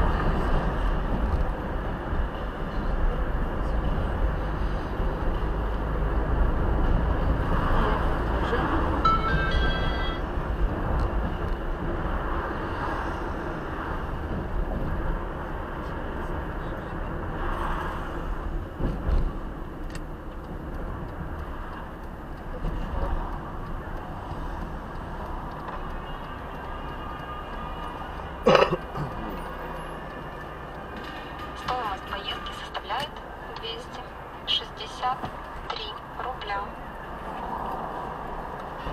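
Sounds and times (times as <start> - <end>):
car cabin road noise: 0.0 - 38.9.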